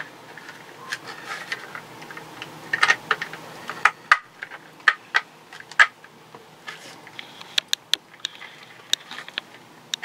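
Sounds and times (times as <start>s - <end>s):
plastic and metal parts clicking: 0.3s - 6.0s.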